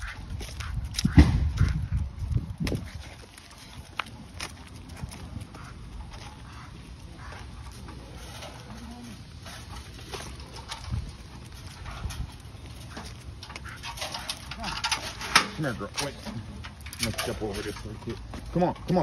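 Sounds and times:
footsteps: 0:00.0 - 0:19.0.

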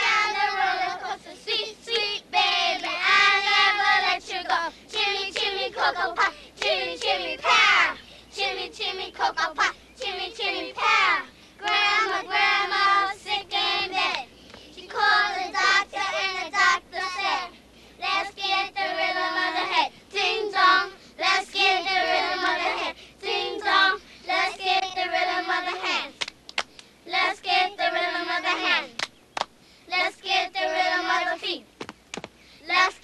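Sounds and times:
girls chanting a clapping rhyme: 0:00.0 - 0:17.5, 0:18.1 - 0:31.6
sharp hand claps: 0:26.2 - 0:26.9, 0:29.0 - 0:29.5.

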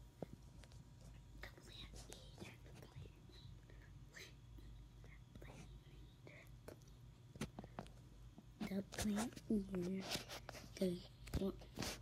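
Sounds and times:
soft clicks and rustles: 0:00.1 - 0:03.2, 0:06.6 - 0:12.0
person whispering: 0:01.3 - 0:06.9.

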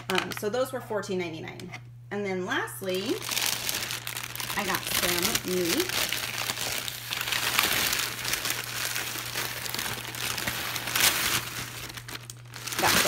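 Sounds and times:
plastic bag crinkling: 0:02.9 - 0:13.0.

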